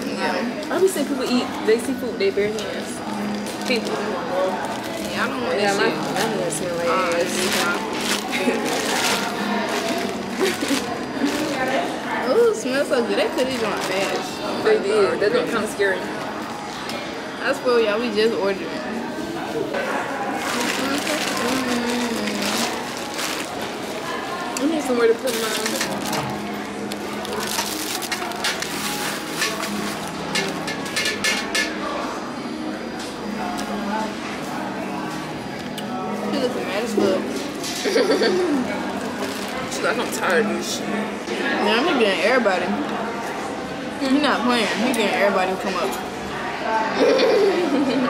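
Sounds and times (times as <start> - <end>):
plastic bag crinkling: 3.4 - 11.9, 20.4 - 24.2, 25.1 - 30.7, 38.9 - 40.3.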